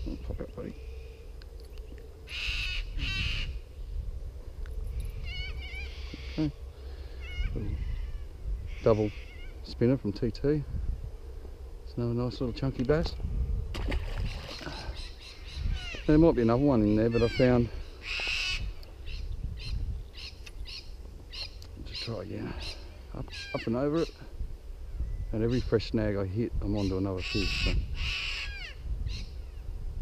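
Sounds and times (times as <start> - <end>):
bird calling: 0.0 - 3.9, 5.1 - 9.7, 14.1 - 24.3, 26.7 - 29.6
wind rumble on microphone: 0.0 - 30.0.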